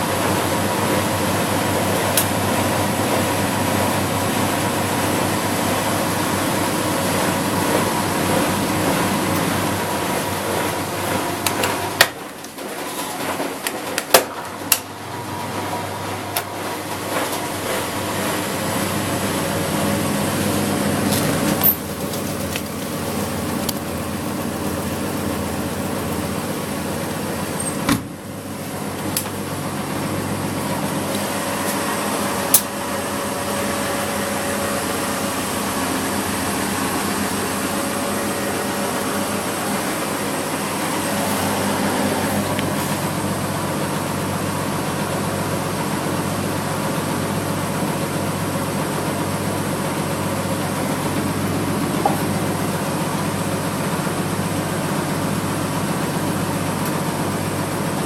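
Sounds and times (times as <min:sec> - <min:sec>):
washing machine humming: 0:00.0 - 0:58.0.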